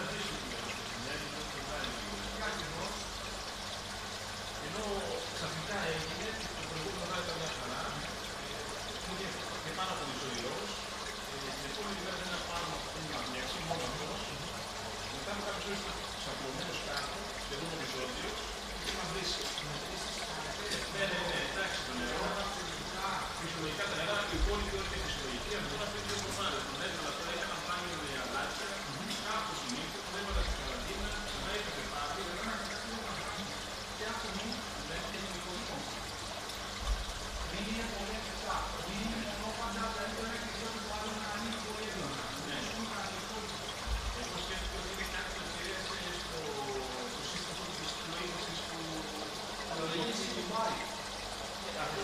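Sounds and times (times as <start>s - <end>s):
aquarium water trickling: 0.0s - 52.0s.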